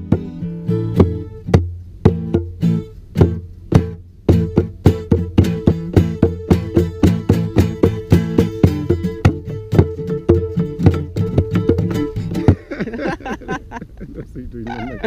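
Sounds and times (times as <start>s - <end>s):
acoustic guitar strumming: 0.0s - 13.8s.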